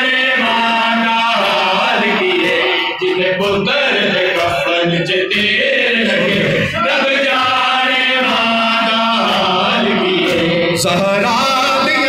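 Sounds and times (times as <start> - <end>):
men chanting a lament: 0.0 - 12.0
sharp beat: 0.0 - 12.0.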